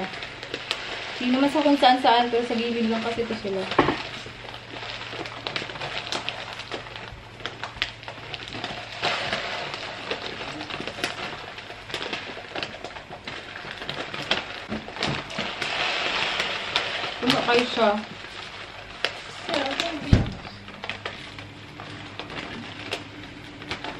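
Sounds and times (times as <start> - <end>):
rice grains pouring into plastic bin: 0.0 - 20.1.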